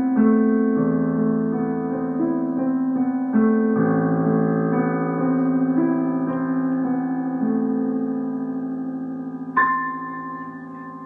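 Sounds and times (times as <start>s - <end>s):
child playing piano melody: 0.0s - 11.0s.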